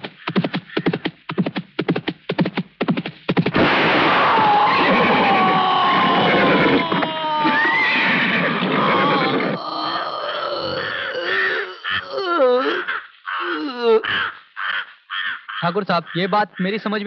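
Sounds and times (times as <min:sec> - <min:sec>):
man groaning in pain: 0:09.0 - 0:14.2.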